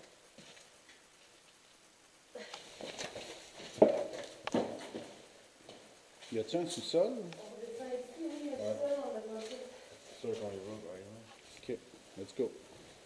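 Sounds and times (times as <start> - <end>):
footsteps and gear handling: 2.6 - 6.4.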